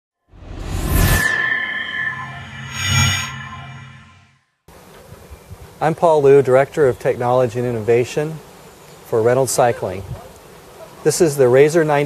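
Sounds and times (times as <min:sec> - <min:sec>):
faint steady hiss: 0:04.7 - 0:12.0.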